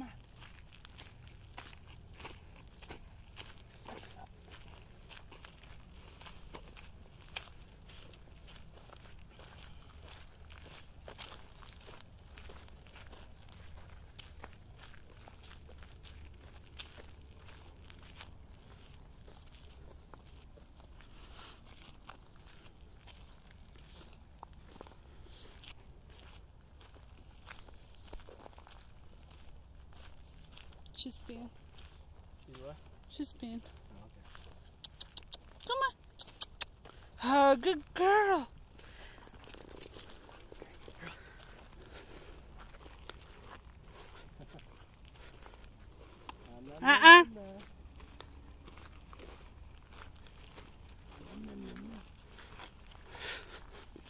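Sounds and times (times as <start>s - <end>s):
footsteps crunching on dry ground: 0.0s - 36.1s, 36.7s - 54.0s.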